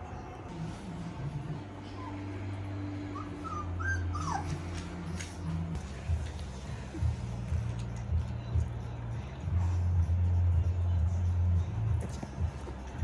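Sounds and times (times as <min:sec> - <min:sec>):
steady low hum: 0:00.0 - 0:13.0
puppies whimpering and yipping: 0:01.8 - 0:05.2.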